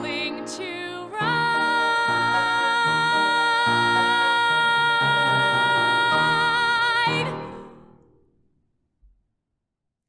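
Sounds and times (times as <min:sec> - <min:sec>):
woman singing a high note: 0:00.0 - 0:07.5.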